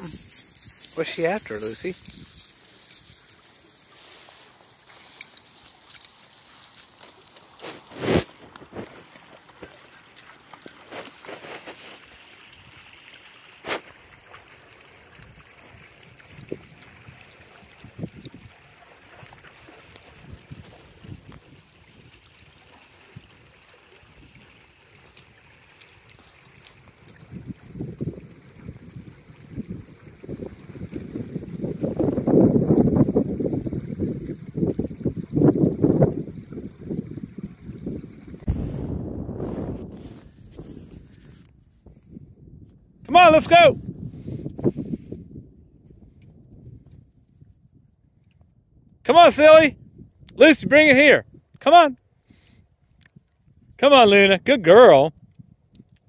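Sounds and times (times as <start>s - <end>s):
creek trickling over stones: 0.0s - 38.5s
low rumble: 38.4s - 41.0s.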